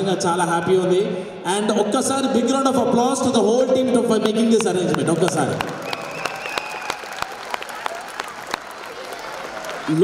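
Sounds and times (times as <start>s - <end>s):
audience applauding: 4.6s - 10.0s.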